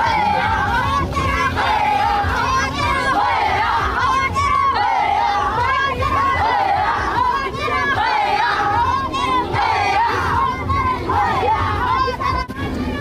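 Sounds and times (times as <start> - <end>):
crowd chanting: 0.0 - 13.0
crowd noise: 0.0 - 13.0.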